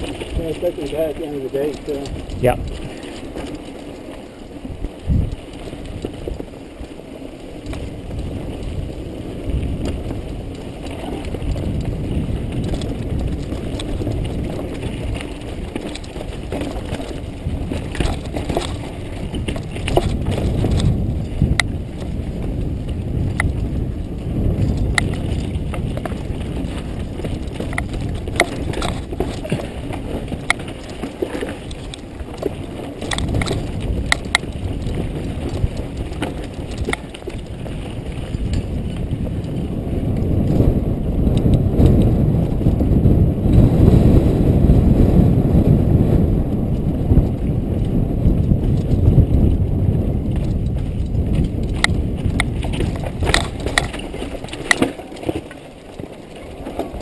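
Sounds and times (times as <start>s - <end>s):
bike chain and frame rattling: 0.0s - 57.0s
tyres rumbling over dirt and rock: 0.0s - 57.0s.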